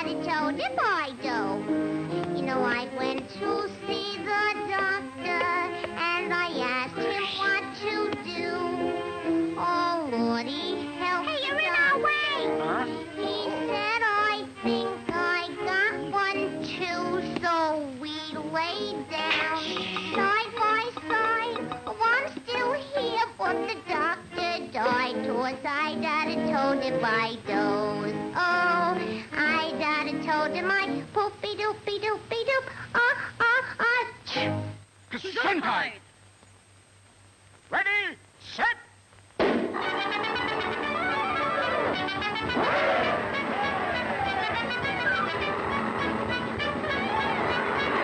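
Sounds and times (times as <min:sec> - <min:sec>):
musical accompaniment: 0:00.0 - 0:17.4, 0:18.2 - 0:31.0, 0:39.7 - 0:48.0
faint steady hum: 0:00.0 - 0:48.0
high cartoon voice singing: 0:09.6 - 0:34.6.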